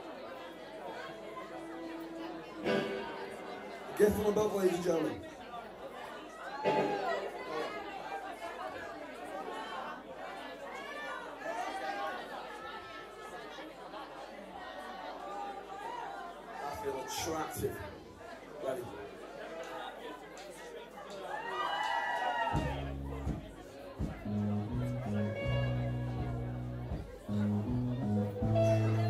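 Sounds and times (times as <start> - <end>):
crowd conversation hubbub: 0.0 - 29.0.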